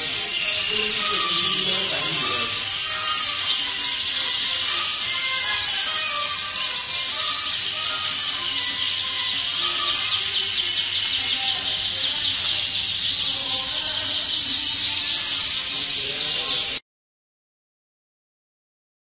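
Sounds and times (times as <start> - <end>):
canaries trilling and chirping: 0.0 - 16.8.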